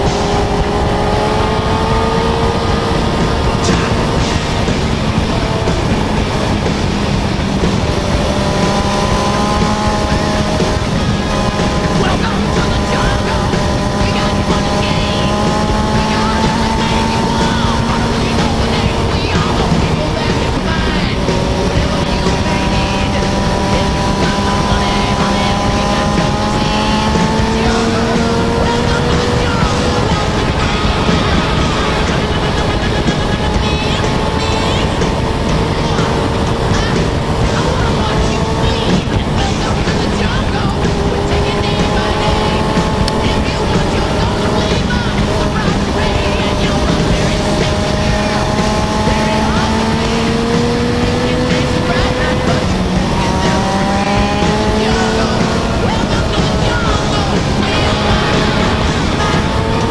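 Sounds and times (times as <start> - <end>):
motorcycle engine accelerating: 0.0 - 59.9
road noise: 0.0 - 59.9
wind rush: 0.0 - 59.9.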